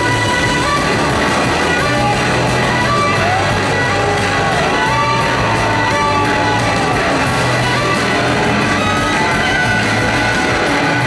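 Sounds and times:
live blues-rock band playing: 0.0 - 11.0.

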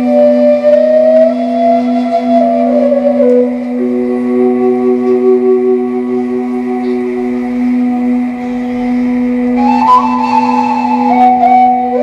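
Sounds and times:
flute slow melody: 0.0 - 12.0
steady low drone: 0.0 - 12.0.

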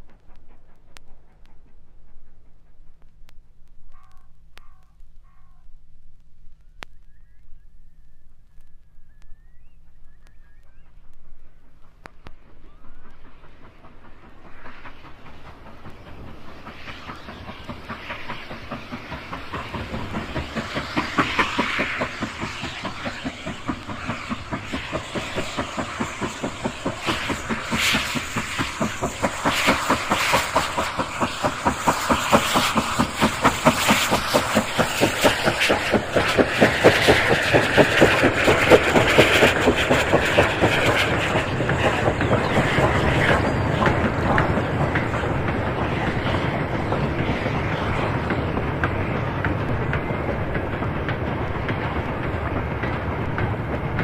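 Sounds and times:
steam train passing: 0.0 - 4.8, 9.0 - 54.0
wheels beating on rails: 9.7 - 54.0.

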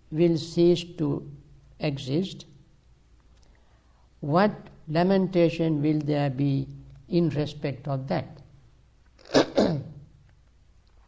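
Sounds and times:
person sneezing: 9.2 - 10.0.

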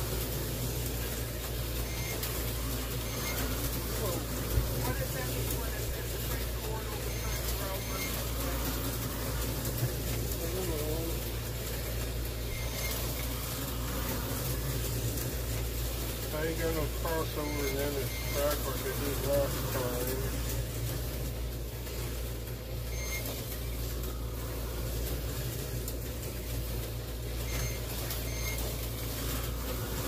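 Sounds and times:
constant hiss: 0.0 - 30.0
low mechanical hum: 0.0 - 30.0.

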